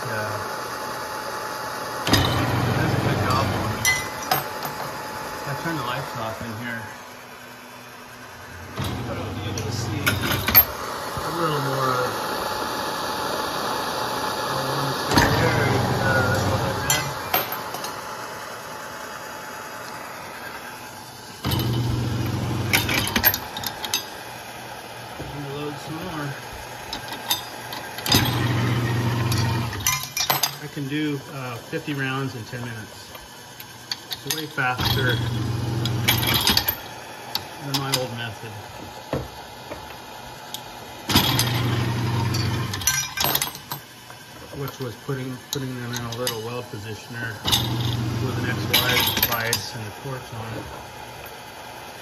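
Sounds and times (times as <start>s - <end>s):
gas torches hissing: 0.0s - 30.0s, 43.9s - 52.0s
motor humming: 0.0s - 30.2s, 31.1s - 42.9s, 43.9s - 52.0s.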